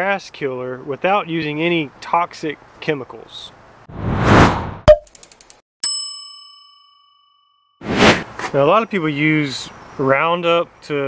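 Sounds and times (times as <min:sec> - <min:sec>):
bright bell ding: 0:05.8 - 0:07.7.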